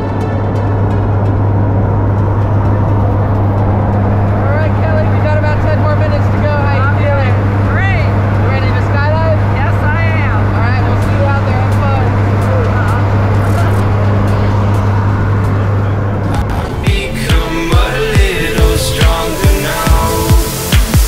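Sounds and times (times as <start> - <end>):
airplane engine and propeller drone: 0.0 - 20.7.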